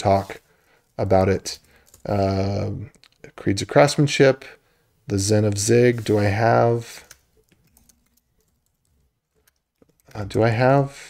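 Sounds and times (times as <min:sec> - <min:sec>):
computer keyboard typing: 0:07.0 - 0:10.2.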